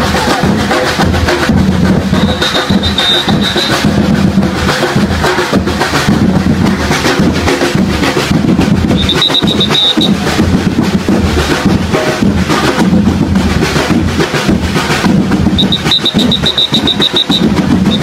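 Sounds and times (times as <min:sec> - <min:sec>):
dance music with drumming: 0:00.0 - 0:18.0
rapid high chirping: 0:09.0 - 0:10.2, 0:15.6 - 0:18.0.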